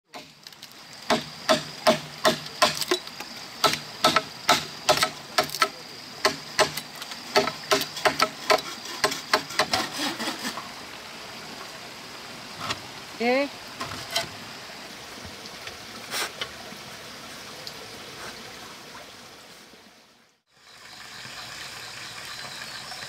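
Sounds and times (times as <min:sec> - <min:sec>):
machete chopping bamboo: 0:00.1 - 0:10.4.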